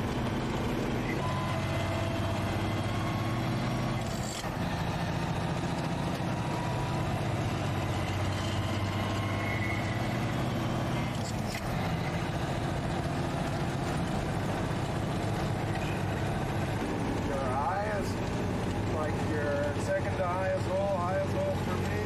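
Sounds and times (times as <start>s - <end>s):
road noise: 0.0s - 22.0s
truck engine running: 0.0s - 22.0s.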